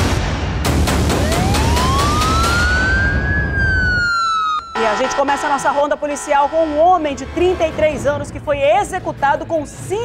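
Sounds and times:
siren wail: 1.1s - 6.7s.

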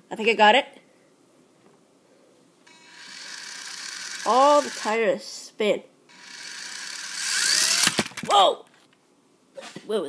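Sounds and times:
toy car electric motor whirring: 2.7s - 5.0s, 6.1s - 8.3s.

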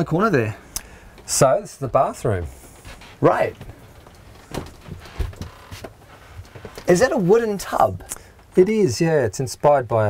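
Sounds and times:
footsteps on wooden floor: 1.9s - 7.0s.

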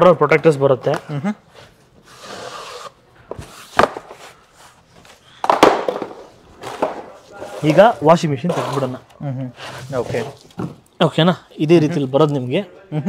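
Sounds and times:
cardboard rustling and scraping: 1.6s - 5.2s, 5.9s - 10.8s.

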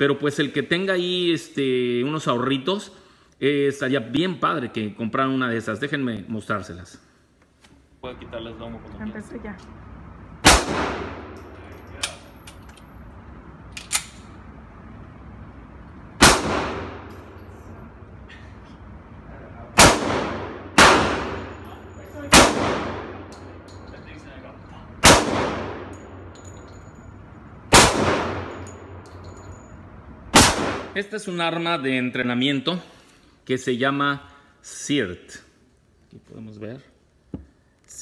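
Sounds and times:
pistol shots echoing indoors: 10.4s - 11.6s, 16.2s - 17.5s, 19.8s - 23.8s, 25.0s - 26.8s, 27.6s - 29.2s, 30.3s - 31.0s.

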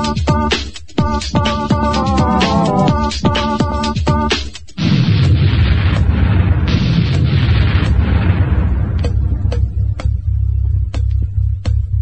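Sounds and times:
dance music with heavy bass: 1.1s - 3.1s
sharp percussion hits: 1.6s - 3.0s.

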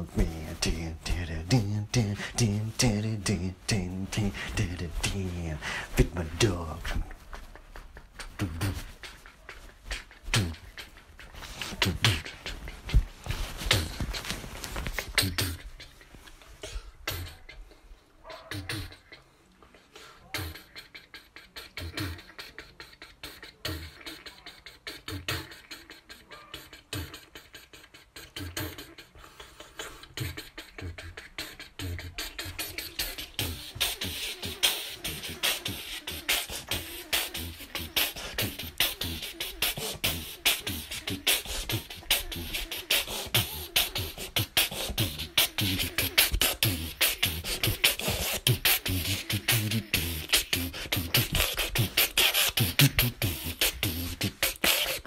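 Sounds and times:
beatboxing: 0.0s - 55.0s.

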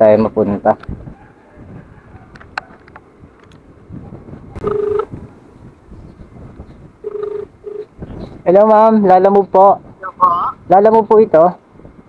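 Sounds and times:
phone ringback beeps: 4.6s - 5.1s, 7.0s - 7.9s.

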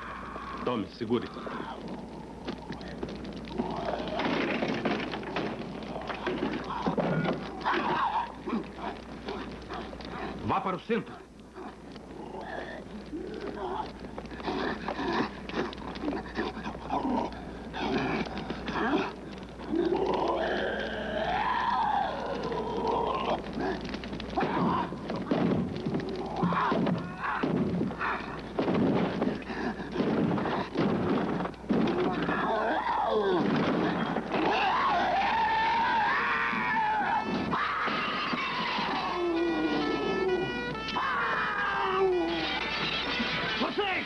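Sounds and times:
thuds: 23.3s - 32.5s, 33.2s - 34.8s
long rising and falling cry: 34.4s - 42.6s.

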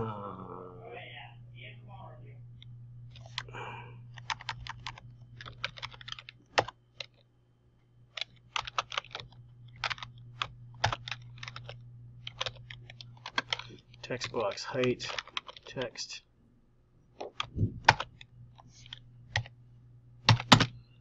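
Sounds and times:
typing on computer keyboard: 4.1s - 7.2s, 8.1s - 15.9s, 17.2s - 19.5s, 20.2s - 20.8s.

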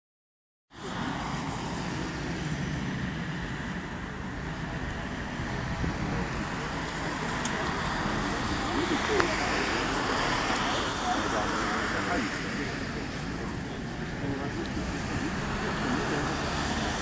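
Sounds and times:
road traffic noise: 0.7s - 17.0s.

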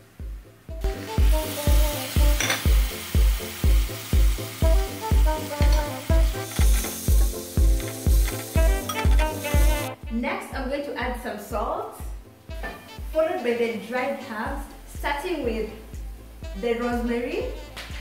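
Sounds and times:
background music with steady beat: 0.0s - 18.0s
tomatoes sizzling in frying pan: 0.8s - 10.0s.

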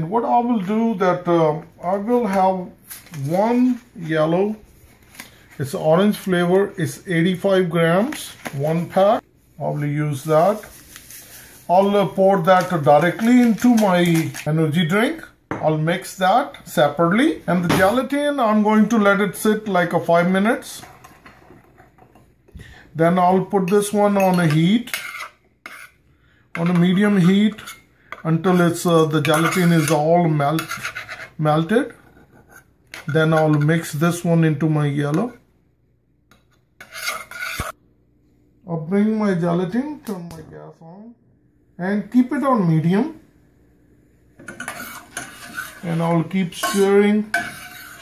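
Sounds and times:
metal spoon scraping a saucepan: 23.6s - 33.8s, 36.8s - 37.8s, 44.4s - 48.0s
metal spoon stirring in glass cup: 46.5s - 48.0s.

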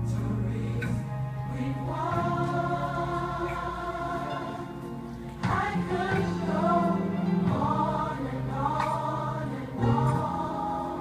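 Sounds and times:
choir holding a chord: 0.0s - 11.0s.

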